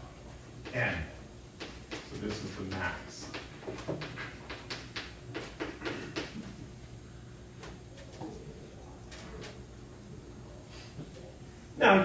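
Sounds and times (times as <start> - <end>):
chalk tapping and scraping on blackboard: 1.6 - 6.5.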